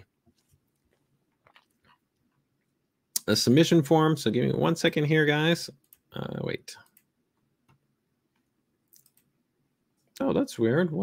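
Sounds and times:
faint computer mouse clicks: 8.9 - 9.3.

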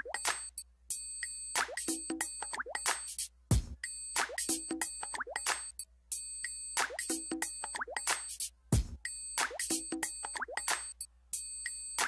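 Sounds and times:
plucked notes and blips music: 1.5 - 5.8, 6.7 - 11.0.

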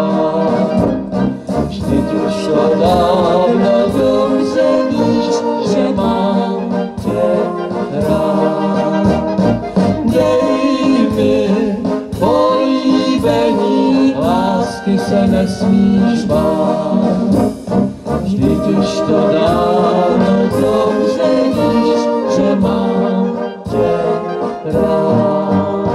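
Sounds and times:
man singing: 0.0 - 17.5, 18.2 - 25.9
brass band playing: 0.0 - 25.9.

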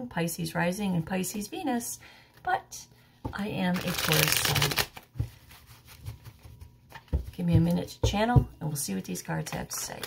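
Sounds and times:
cards tapping and rustling: 3.8 - 7.8.

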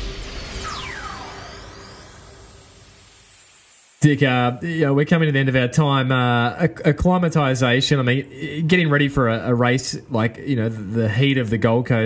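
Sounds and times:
musical transition sting: 0.0 - 4.0.

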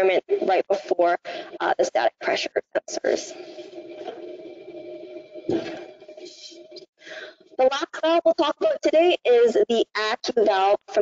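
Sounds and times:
steady low hum: 0.0 - 9.6.

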